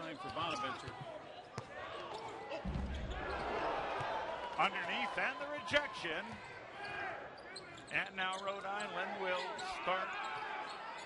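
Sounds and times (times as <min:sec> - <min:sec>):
deep crowd rumble: 0:02.5 - 0:04.6.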